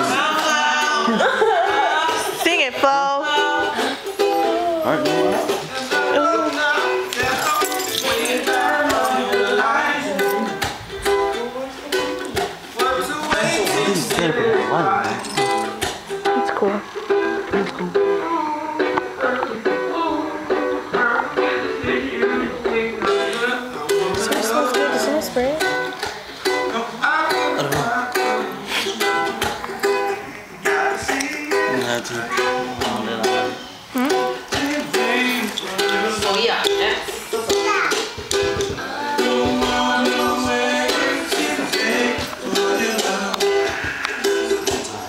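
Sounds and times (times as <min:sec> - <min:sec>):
person singing: 0:00.0 - 0:15.8, 0:17.5 - 0:45.0
strummed acoustic strings: 0:00.0 - 0:45.0.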